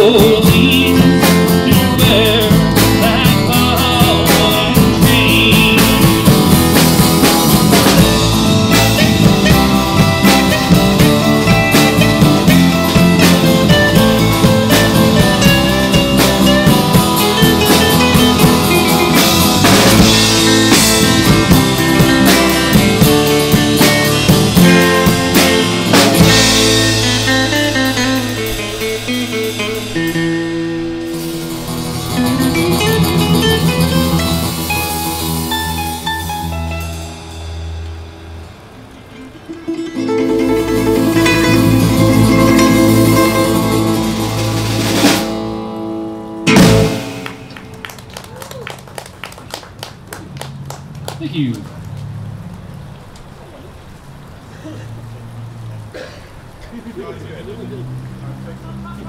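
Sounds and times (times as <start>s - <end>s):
acoustic guitars: 0.0s - 48.9s
drum kit playing: 0.0s - 48.9s.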